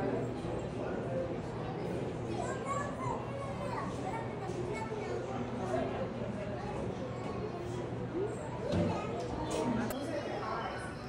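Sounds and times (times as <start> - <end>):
children's voices: 1.9 - 5.8, 6.6 - 11.0.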